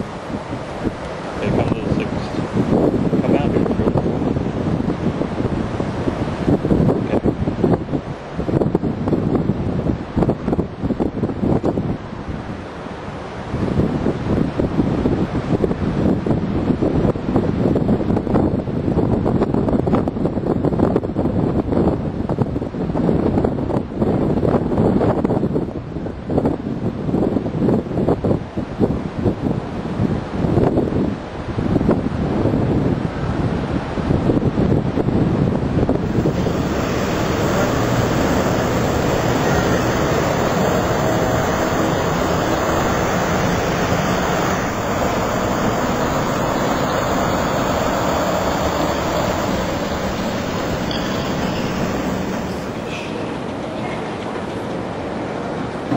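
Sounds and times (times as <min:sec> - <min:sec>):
outdoor noise rush: 0:00.0 - 0:55.9
wind buffeting microphone: 0:00.0 - 0:55.9.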